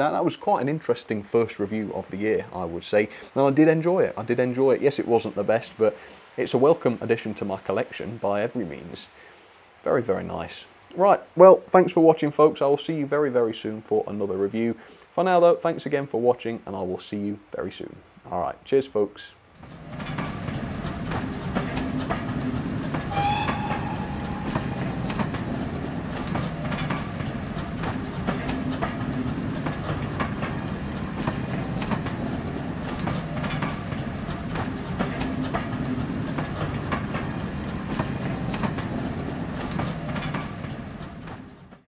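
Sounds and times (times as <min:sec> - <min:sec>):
train coaches rumbling past: 0:19.6 - 0:41.8
wheels clicking over rail joints: 0:19.6 - 0:41.9
high wheel squeal: 0:23.0 - 0:27.3.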